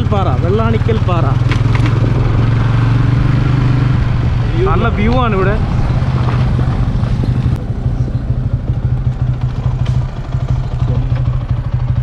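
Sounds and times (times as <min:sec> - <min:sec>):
vehicle engine droning: 0:00.0 - 0:12.0.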